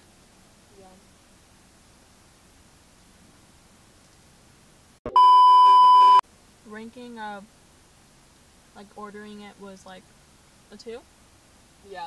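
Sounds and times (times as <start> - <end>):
high steady test-tone beep: 5.1 - 6.2.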